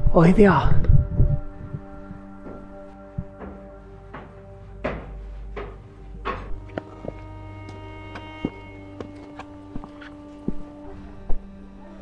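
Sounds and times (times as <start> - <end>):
background music with held tones: 0.0 - 12.0
soft percussive hits: 2.4 - 9.4.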